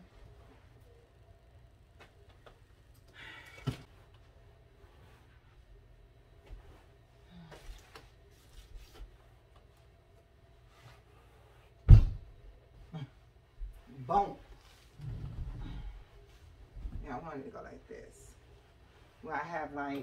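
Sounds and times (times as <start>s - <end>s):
thump: 11.9s - 12.2s.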